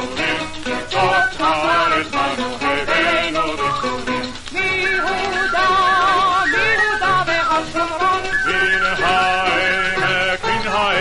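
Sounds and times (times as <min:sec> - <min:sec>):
instrumental accompaniment: 0:00.0 - 0:11.0
person singing with vibrato: 0:04.6 - 0:11.0.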